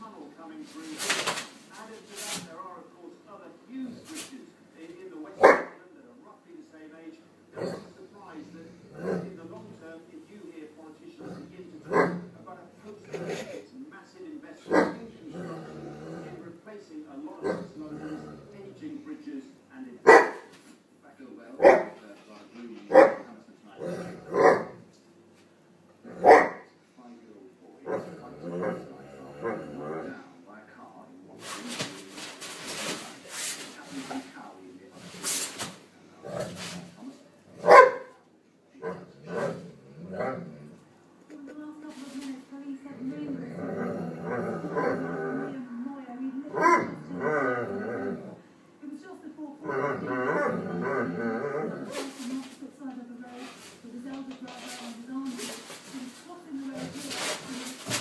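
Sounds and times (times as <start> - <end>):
dog barking: 5.4 - 5.8, 11.8 - 12.3, 14.7 - 15.0, 20.0 - 20.5, 21.6 - 22.0, 22.9 - 23.3, 24.2 - 24.8, 26.1 - 26.7, 37.6 - 38.2, 46.5 - 47.0
dogs growling and barking: 7.5 - 9.8, 11.2 - 13.6, 14.6 - 16.6, 17.4 - 18.9, 22.9 - 25.0, 26.0 - 26.6, 27.8 - 30.3, 36.2 - 38.1, 38.8 - 40.9, 42.9 - 45.7, 46.4 - 48.5, 49.6 - 52.3.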